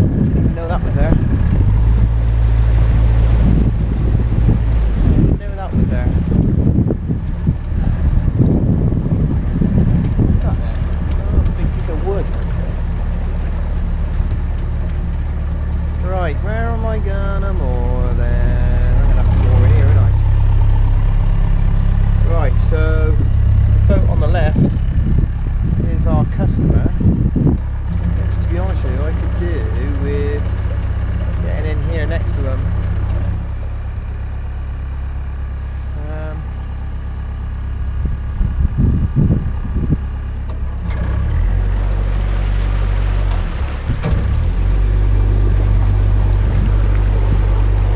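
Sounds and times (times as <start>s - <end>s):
diesel boat engine running: 0.0s - 47.9s.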